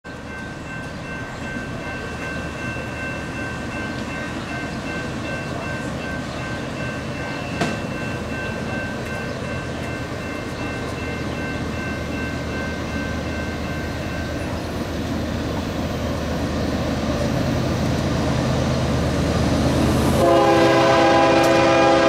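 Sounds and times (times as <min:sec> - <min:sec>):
freight train rumbling: 0:00.0 - 0:22.0.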